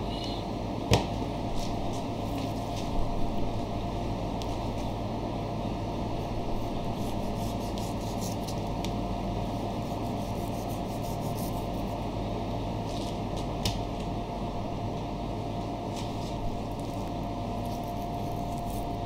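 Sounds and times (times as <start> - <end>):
steady background hum: 0.0 - 19.0
knife slicing and scraping meat: 9.9 - 11.9, 17.6 - 19.0.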